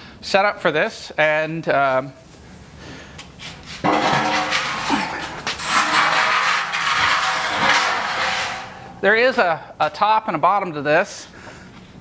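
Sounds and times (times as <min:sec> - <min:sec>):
metal frame scraping on concrete: 0:03.4 - 0:09.1.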